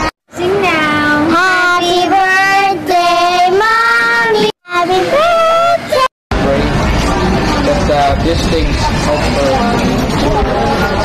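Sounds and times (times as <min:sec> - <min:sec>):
noisy talk: 0:00.0 - 0:11.0
high voice singing: 0:00.5 - 0:06.1.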